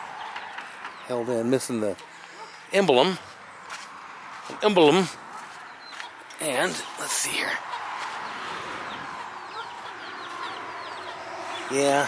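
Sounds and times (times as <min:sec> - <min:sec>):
baby chicks peeping: 0:04.4 - 0:12.0.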